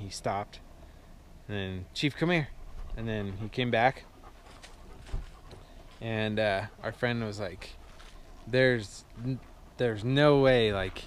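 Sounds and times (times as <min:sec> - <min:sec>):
dog panting: 0:02.1 - 0:11.0.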